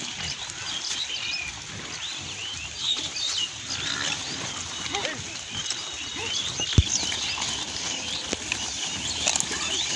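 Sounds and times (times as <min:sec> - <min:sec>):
pigs grunting: 0:00.0 - 0:09.9
small birds chirping: 0:00.0 - 0:09.9.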